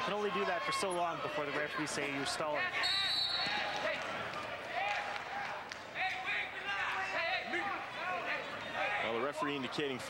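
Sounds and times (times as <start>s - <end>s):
crowd voices: 0.0s - 10.0s
referee's whistle: 2.8s - 3.8s.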